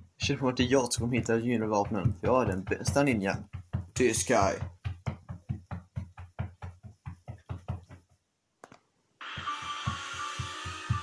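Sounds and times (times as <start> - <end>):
quick dull knocks: 0.1 - 8.2.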